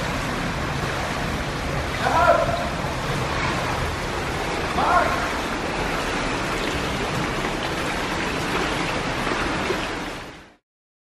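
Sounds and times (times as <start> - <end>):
swimming pool water rushing: 0.0 - 10.6.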